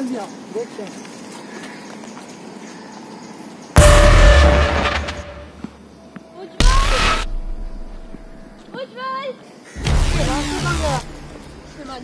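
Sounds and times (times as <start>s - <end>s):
loud boom with deep rumble: 3.8s - 5.6s.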